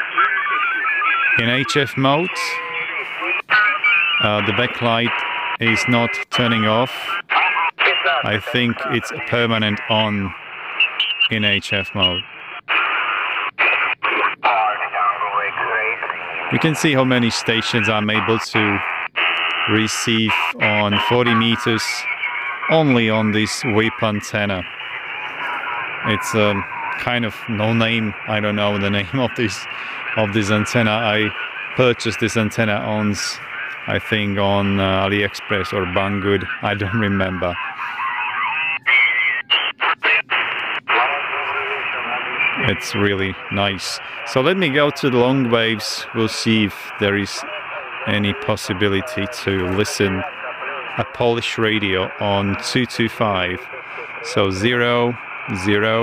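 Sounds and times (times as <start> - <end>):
radio voice signals: 0.0 - 56.0.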